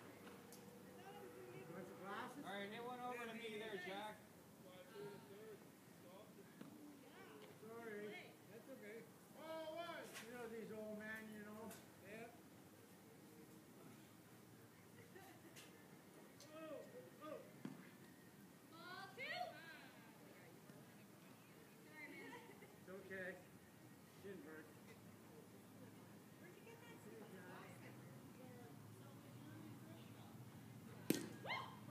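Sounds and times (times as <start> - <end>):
faint voices talking: 0.0 - 31.5.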